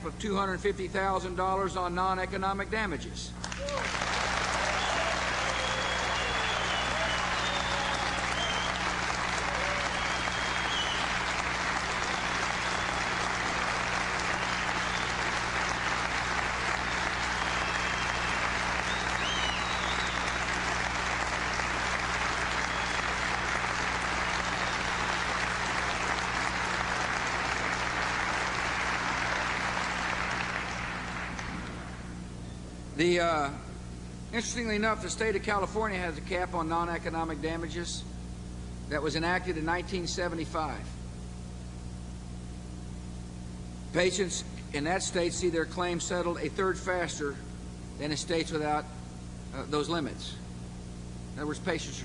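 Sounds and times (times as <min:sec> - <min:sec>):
audience applauding: 0:03.4 - 0:32.1.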